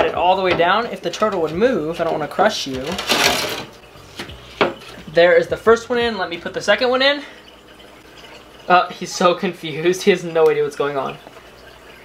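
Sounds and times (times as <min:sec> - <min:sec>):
tile scraping on glass: 0:01.4 - 0:05.1.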